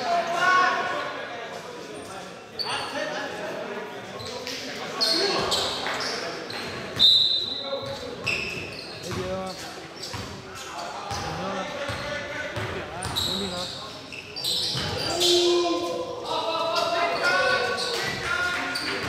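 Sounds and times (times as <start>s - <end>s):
players calling out: 11.1s - 19.0s.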